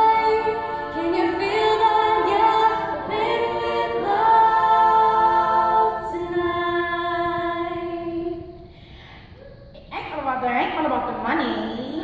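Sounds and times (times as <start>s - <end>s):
female choir singing chords: 0.0s - 8.8s.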